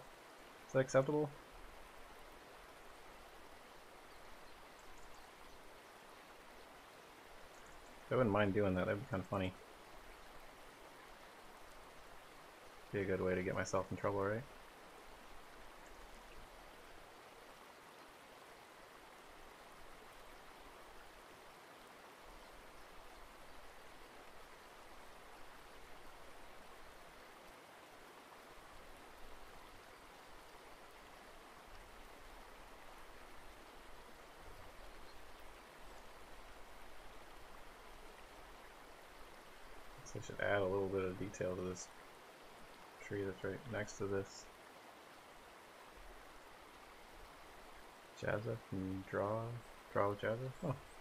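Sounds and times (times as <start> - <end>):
microphone hiss: 0.0 - 51.0.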